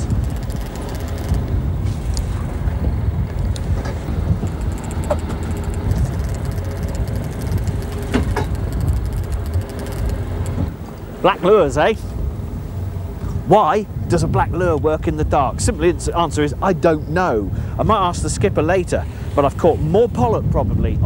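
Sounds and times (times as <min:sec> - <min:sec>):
boat low rumble: 0:00.0 - 0:21.0.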